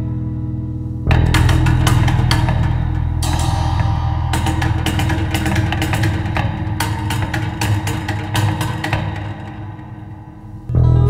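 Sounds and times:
low guitar drone: 0.0 - 11.0
percussive strikes on guitar: 1.0 - 11.0.

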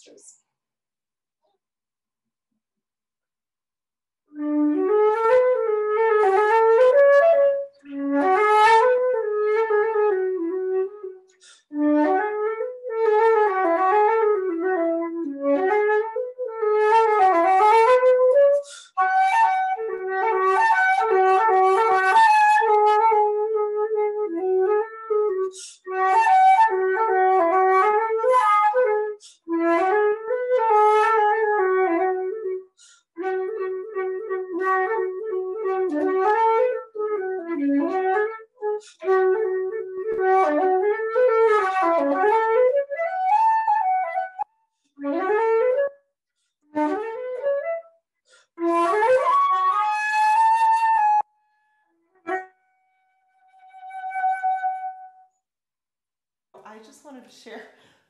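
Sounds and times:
solo flute melody: 4.3 - 55.4.

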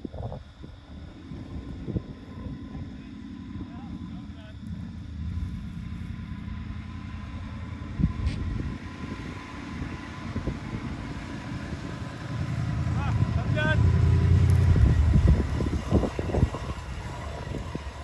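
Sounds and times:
car engine running: 0.5 - 18.0.

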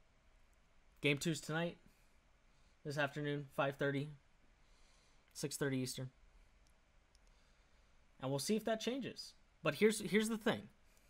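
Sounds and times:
faint short clicks: 6.6 - 7.4.

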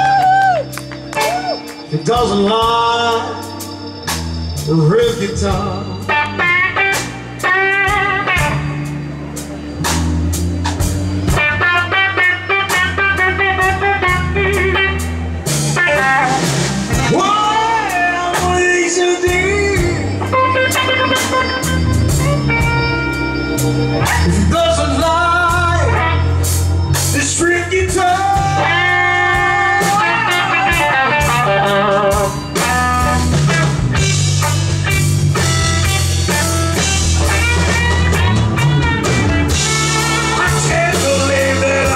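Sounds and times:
electric guitar lead: 0.0 - 41.9
live blues band: 0.0 - 41.9.

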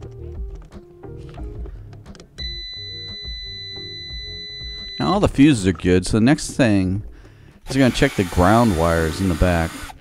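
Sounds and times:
background music: 0.0 - 10.0
multimeter continuity beep: 2.4 - 5.2.

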